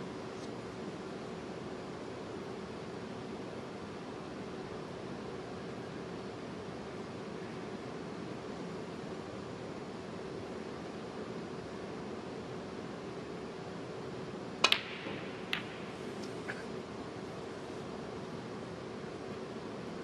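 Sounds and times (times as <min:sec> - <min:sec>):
arena room tone hush: 0:00.0 - 0:20.0
snooker balls clicking: 0:14.6 - 0:16.7.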